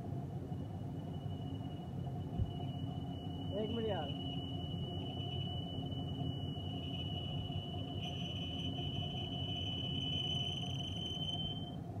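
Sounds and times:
lathe low running rumble: 0.0 - 12.0
lathe cutting high-pitched whine: 1.1 - 11.8.

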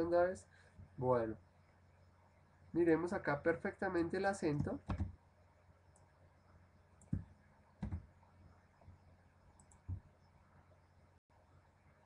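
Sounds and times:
computer mouse clicks: 9.5 - 10.1.

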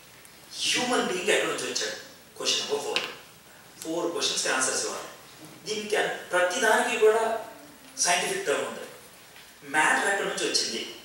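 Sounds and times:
man talking: 0.5 - 3.2, 3.8 - 9.0, 9.6 - 11.0.

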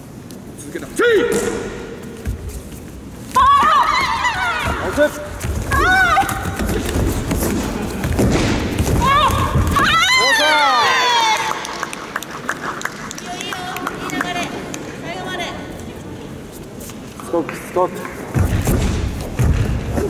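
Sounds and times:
loud shouts: 3.4 - 6.6, 9.0 - 11.8.

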